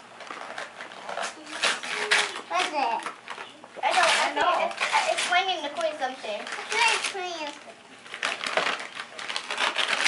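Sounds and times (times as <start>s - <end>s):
paper rustling and tearing: 0.2s - 10.0s
child's voice: 1.4s - 7.8s.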